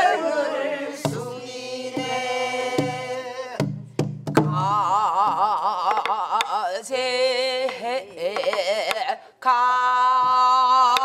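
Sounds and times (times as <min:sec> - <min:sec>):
woman singing with wide vibrato: 0:00.0 - 0:03.6, 0:04.5 - 0:11.0.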